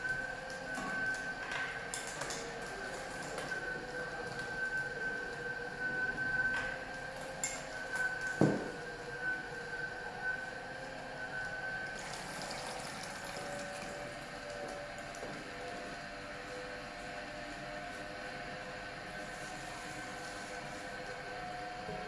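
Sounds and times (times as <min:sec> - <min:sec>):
juicer motor whining: 0:00.0 - 0:22.0
liquid pouring into jug: 0:12.0 - 0:14.0.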